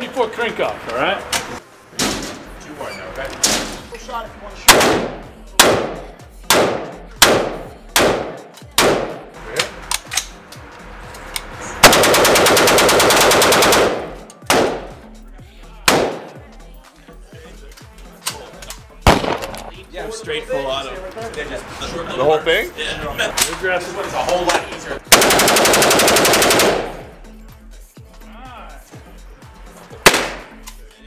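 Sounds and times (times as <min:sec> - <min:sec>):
full-automatic gunfire burst: 0:04.7 - 0:09.2, 0:11.8 - 0:14.9, 0:15.9 - 0:16.3, 0:19.1 - 0:19.4, 0:25.1 - 0:27.0, 0:30.0 - 0:30.5
rifle shots: 0:04.7 - 0:09.2, 0:11.8 - 0:15.0, 0:15.9 - 0:16.4, 0:19.1 - 0:19.6, 0:25.1 - 0:27.0, 0:30.0 - 0:30.5.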